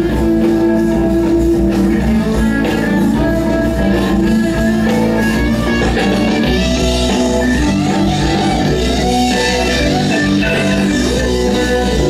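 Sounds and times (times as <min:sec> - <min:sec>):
distant rock band through pa: 0:00.0 - 0:12.0
electric guitar: 0:00.0 - 0:12.0.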